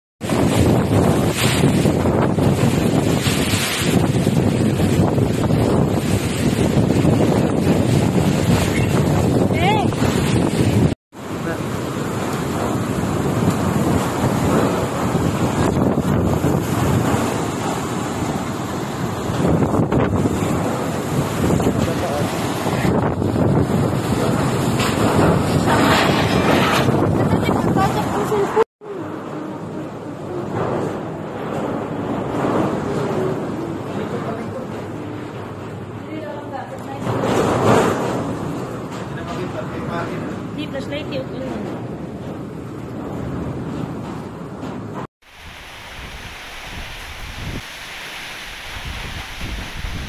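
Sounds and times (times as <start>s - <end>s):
strong wind buffeting microphone: 0.2s - 50.0s.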